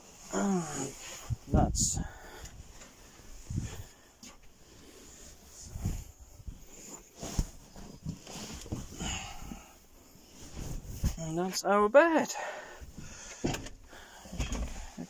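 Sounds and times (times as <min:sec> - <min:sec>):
fabric rustling: 0:02.6 - 0:11.6
soft thumps and knocks: 0:13.0 - 0:15.0.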